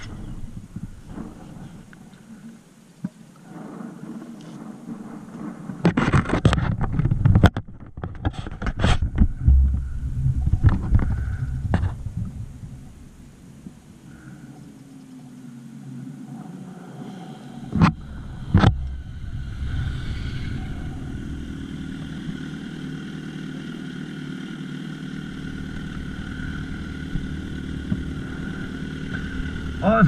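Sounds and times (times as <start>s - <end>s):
motorcycle engines idling: 0.0s - 5.8s, 9.0s - 30.0s
loud sharp thumps: 25.2s - 30.0s.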